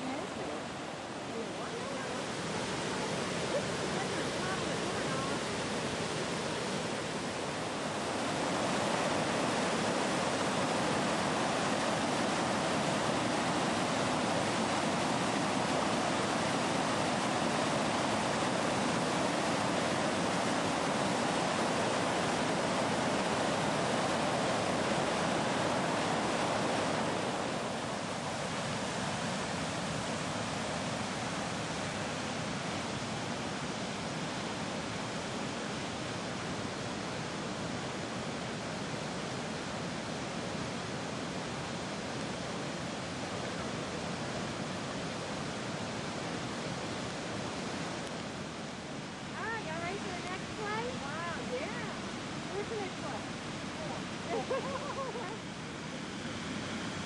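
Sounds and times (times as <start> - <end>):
floodwater rushing: 0.0 - 57.0.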